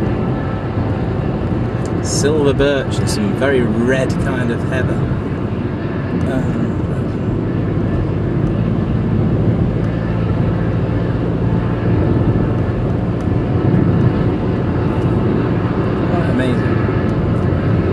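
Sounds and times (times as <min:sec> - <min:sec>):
car engine drone: 0:00.0 - 0:17.9
road noise on wet road: 0:00.0 - 0:17.9.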